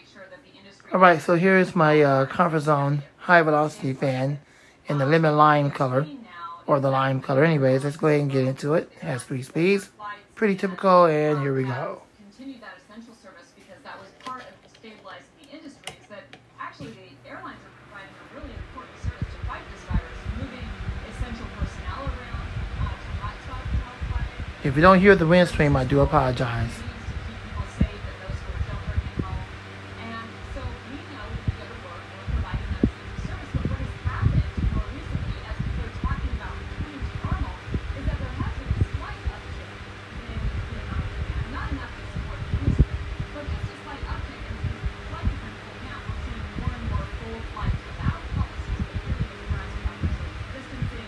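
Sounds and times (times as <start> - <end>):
fan motor humming: 0.0 - 12.8, 13.7 - 51.0
fan switch click: 15.4 - 16.5.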